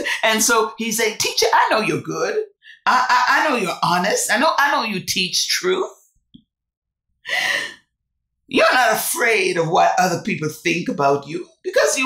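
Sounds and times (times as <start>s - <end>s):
woman breathing in: 7.2s - 7.9s.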